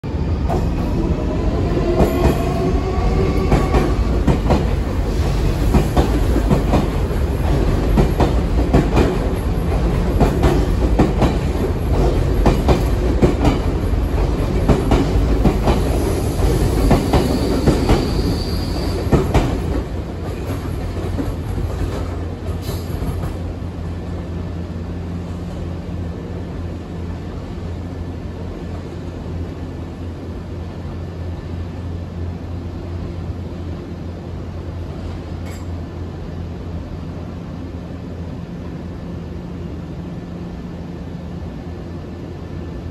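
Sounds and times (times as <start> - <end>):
low train rumble: 0.0 - 42.9
high wheel squeal: 17.2 - 19.1.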